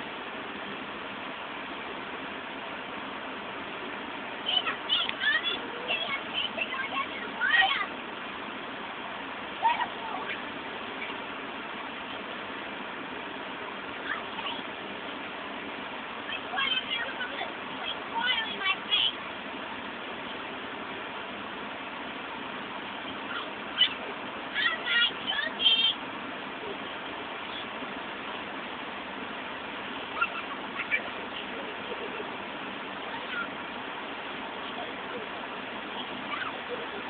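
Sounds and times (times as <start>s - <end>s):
outdoor background hiss: 0.0s - 37.0s.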